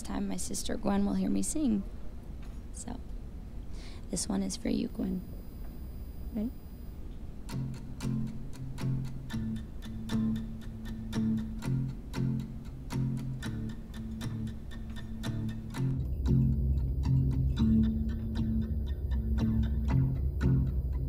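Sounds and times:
acoustic guitar picking: 0:07.4 - 0:21.0
bass guitar: 0:07.7 - 0:21.0.

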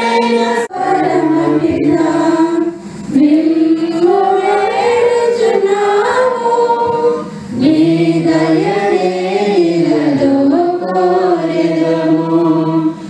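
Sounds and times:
women singing a hymn: 0:00.0 - 0:13.0.

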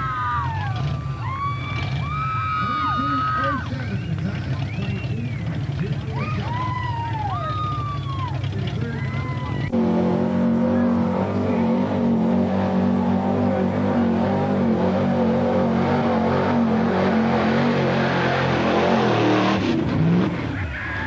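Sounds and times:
low engine hum: 0:00.0 - 0:20.7
engine revving high: 0:09.7 - 0:20.6.

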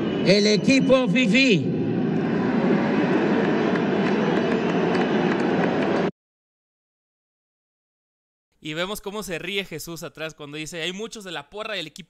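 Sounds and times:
crowd booing: 0:00.0 - 0:06.1
crowd cheering: 0:00.0 - 0:06.1
crowd whistling: 0:00.0 - 0:06.1.

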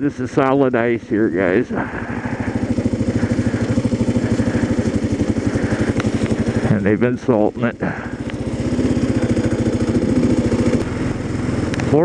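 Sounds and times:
motorcycle engine running: 0:00.0 - 0:12.0.

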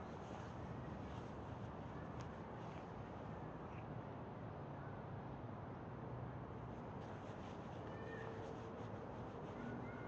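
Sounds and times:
faint drawn-out animal call: 0:07.8 - 0:08.5.

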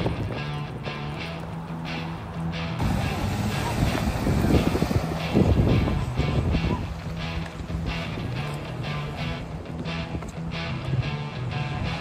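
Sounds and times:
vehicle driving past: 0:01.2 - 0:06.5.

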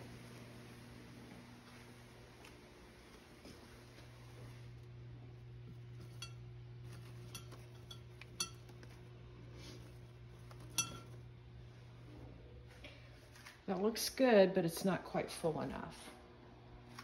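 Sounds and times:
steady low hum: 0:00.0 - 0:17.0
leaves clinking on ceramic: 0:05.7 - 0:11.3.

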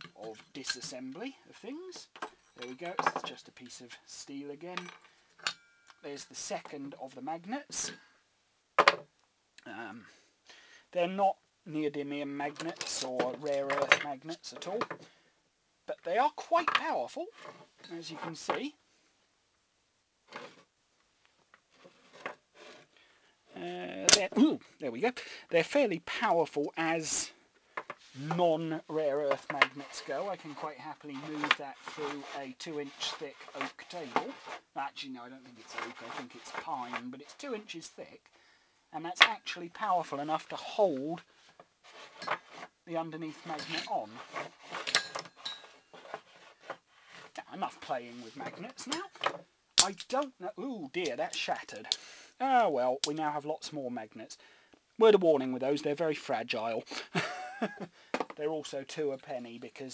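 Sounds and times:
magnets scraping on wooden table: 0:21.7 - 0:22.9, 0:29.2 - 0:34.7, 0:35.4 - 0:37.5, 0:41.5 - 0:42.8, 0:43.4 - 0:47.4.

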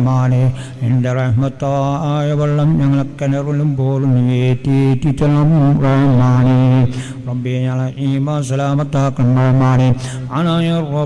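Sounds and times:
man chanting in long notes: 0:00.0 - 0:11.0.

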